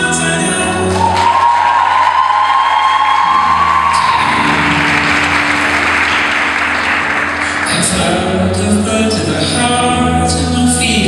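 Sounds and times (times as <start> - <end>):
performance music: 0.0 - 11.0
audience applause: 0.9 - 8.3.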